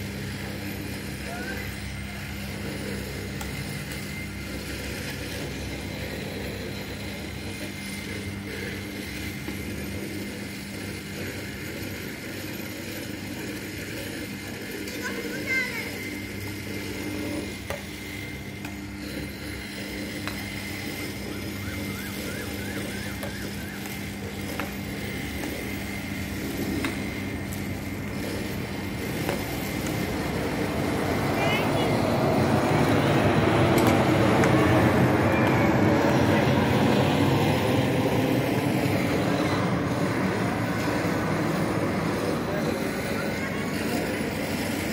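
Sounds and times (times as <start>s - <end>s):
motor passing by: 0.0s - 44.9s.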